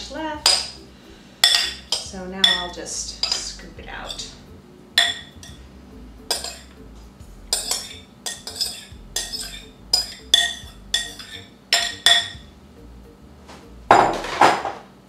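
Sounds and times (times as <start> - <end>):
metal spoon clinking glass bowl: 0.4 - 0.8, 1.4 - 4.3, 5.0 - 5.6, 6.3 - 6.7, 7.5 - 12.4.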